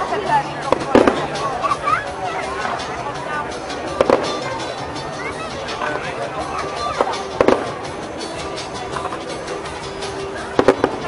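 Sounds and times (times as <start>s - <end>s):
crowd noise: 0.0s - 11.0s
fireworks exploding: 0.7s - 1.3s, 4.0s - 4.5s, 7.0s - 7.8s, 10.6s - 11.0s.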